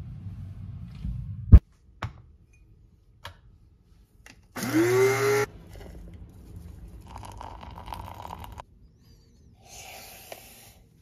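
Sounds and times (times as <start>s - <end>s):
coffee grinder motor whine: 4.6s - 5.5s.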